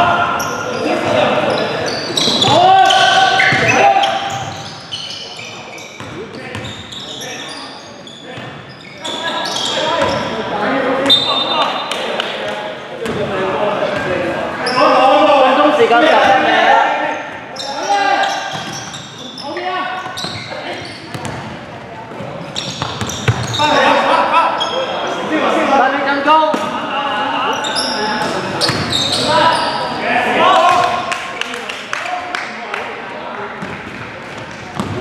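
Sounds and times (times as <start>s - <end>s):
echoing voices: 0.0s - 35.0s.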